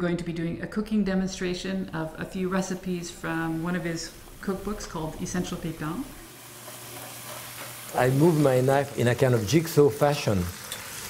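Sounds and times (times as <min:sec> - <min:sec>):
food sizzling in a frying pan: 0:01.8 - 0:11.0.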